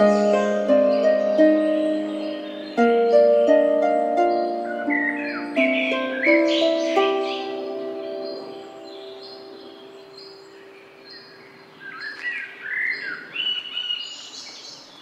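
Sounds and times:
harp and keyboard chord: 0:00.0 - 0:10.4
small birds chirping: 0:00.0 - 0:15.0.

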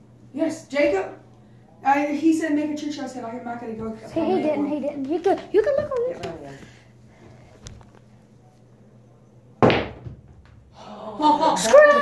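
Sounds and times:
billiard balls striking: 0:09.6 - 0:10.7.

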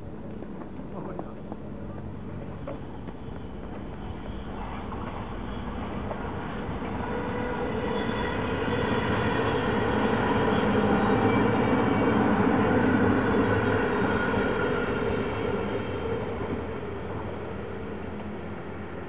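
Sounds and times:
electric train passing at speed: 0:00.0 - 0:19.0.

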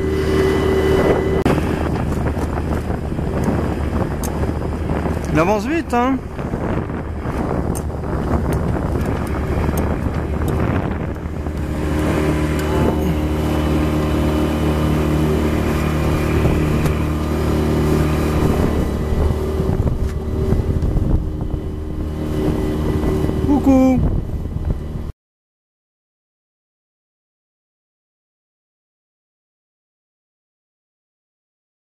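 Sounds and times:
motorboat engine droning: 0:00.0 - 0:25.1
wind buffeting microphone: 0:00.0 - 0:25.1.

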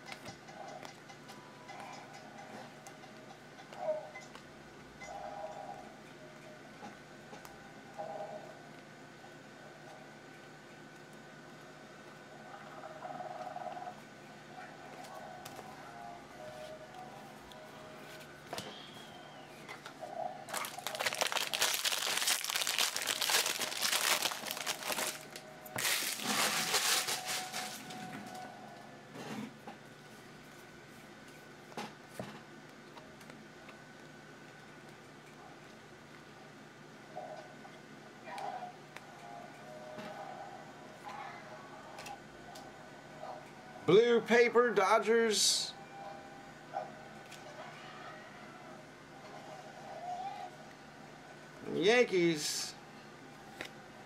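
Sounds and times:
wrapper tearing and crinkling: 0:20.5 - 0:27.8
cards being shuffled: 0:20.5 - 0:27.9.

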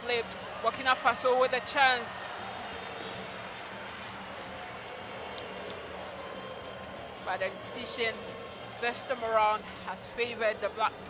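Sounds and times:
football stadium ambience: 0:00.0 - 0:11.0.

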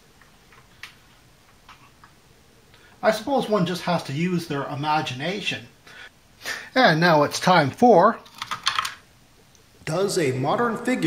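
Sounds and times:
plastic toy clicks: 0:08.3 - 0:09.0.

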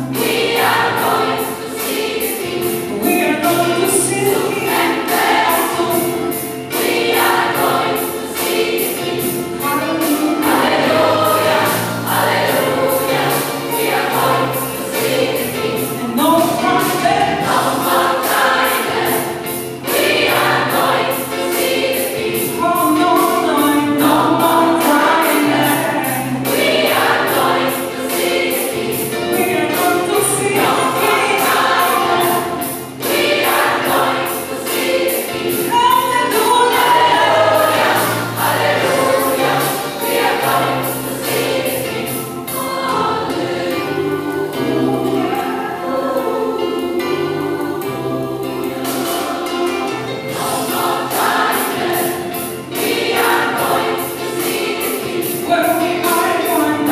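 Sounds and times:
gospel choir singing: 0:00.0 - 0:56.9
accompaniment with quick beat and bass: 0:00.1 - 0:43.2.

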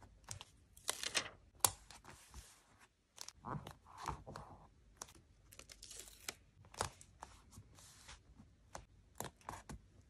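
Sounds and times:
paper rustling: 0:00.8 - 0:01.4.

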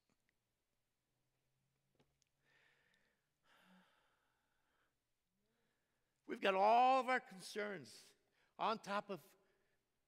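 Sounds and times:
man breathing: 0:02.4 - 0:06.1.

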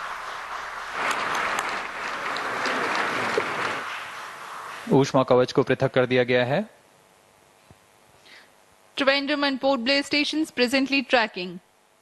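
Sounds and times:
group applause: 0:01.0 - 0:03.9.

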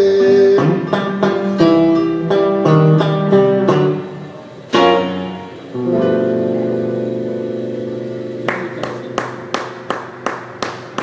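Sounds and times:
guitar and keyboard chord ringing: 0:00.0 - 0:11.0
rhythmic hand clapping: 0:08.4 - 0:11.0.

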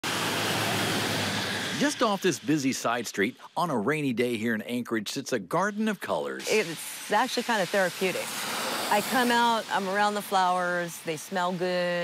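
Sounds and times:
low engine hum: 0:00.0 - 0:01.9
tyres hissing on wet road: 0:00.0 - 0:04.2, 0:05.6 - 0:12.0
man's voice: 0:01.8 - 0:06.4.

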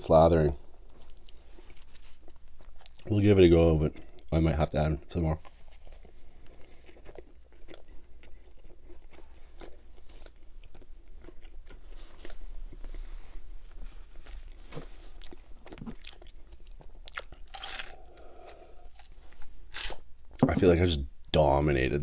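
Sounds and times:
biting and chewing: 0:05.4 - 0:13.0, 0:14.1 - 0:20.5.

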